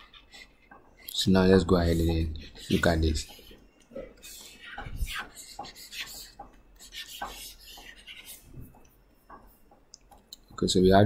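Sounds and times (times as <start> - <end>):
stylus scratching on pen tablet: 0.0 - 8.9.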